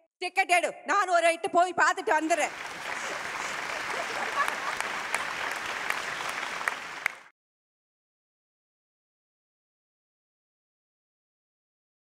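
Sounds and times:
audience applauding: 2.5s - 7.3s.

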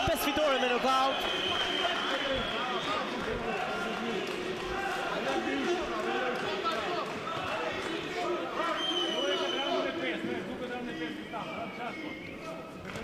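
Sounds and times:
crowd talking and shouting: 0.0s - 13.0s.

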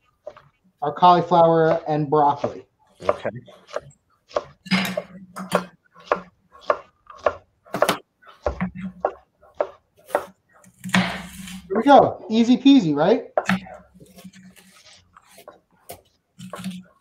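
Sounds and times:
knife chopping on wooden board: 1.6s - 11.6s, 13.4s - 17.0s.

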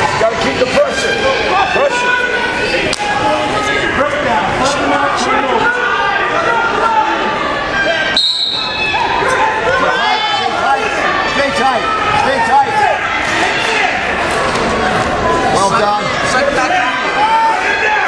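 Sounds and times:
people shouting and calling out: 0.0s - 18.0s.

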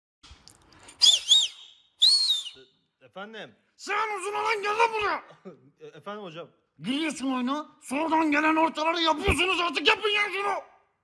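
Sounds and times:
man's loud finger whistle: 1.0s - 2.7s.

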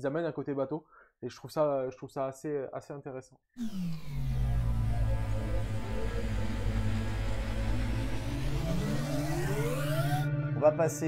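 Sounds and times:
loud low drone with falling tone: 3.6s - 10.4s
rising pitch sweep: 3.6s - 10.9s.

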